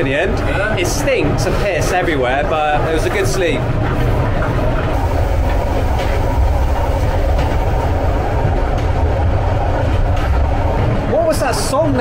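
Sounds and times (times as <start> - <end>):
train rumbling on rails: 0.0 - 12.0
train wheel clicks: 1.7 - 11.0.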